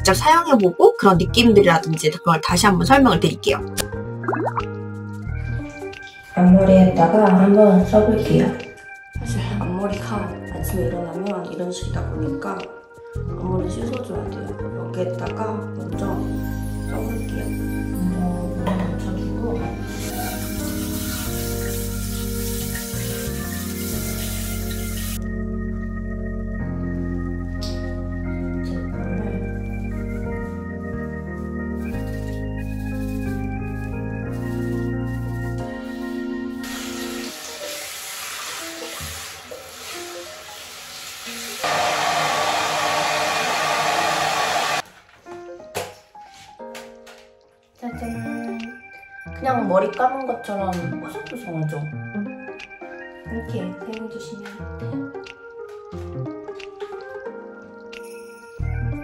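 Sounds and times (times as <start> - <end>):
background music: 0.0 - 59.0
water running from sink tap: 19.7 - 25.2, 36.6 - 43.0
organ music with held chords: 25.1 - 28.6
hair dryer blowing: 36.7 - 44.8.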